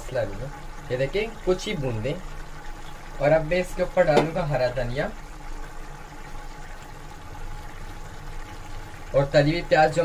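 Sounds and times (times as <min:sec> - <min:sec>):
water boiling in a pot: 0:00.0 - 0:10.0.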